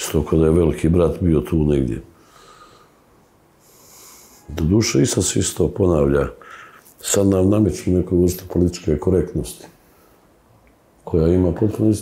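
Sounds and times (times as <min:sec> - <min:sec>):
man breathing in softly: 0:02.2 - 0:04.5, 0:06.4 - 0:06.9.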